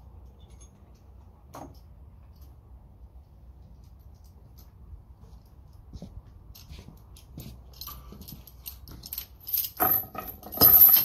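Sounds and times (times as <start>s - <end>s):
steel chain clinking: 7.1s - 11.0s.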